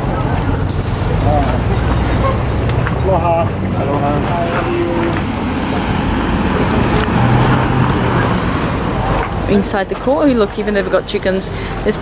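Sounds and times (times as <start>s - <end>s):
road traffic rumbling: 0.0s - 12.0s
voices chattering: 0.0s - 12.0s.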